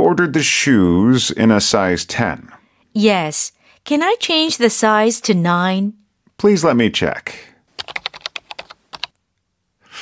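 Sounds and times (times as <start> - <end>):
computer keyboard typing: 7.8 - 9.2.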